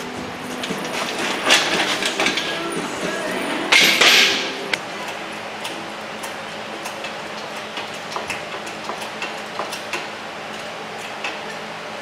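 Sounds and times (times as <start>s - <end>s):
casters rattling on concrete: 0.0s - 4.7s
metal clanking: 0.0s - 11.6s.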